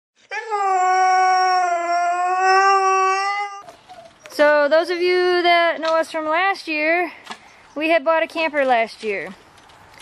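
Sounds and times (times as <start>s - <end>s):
dog howling: 0.3s - 4.2s.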